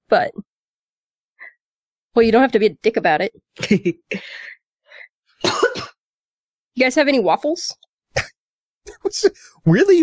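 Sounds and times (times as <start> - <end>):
cough-like burst: 5.4 - 6.0.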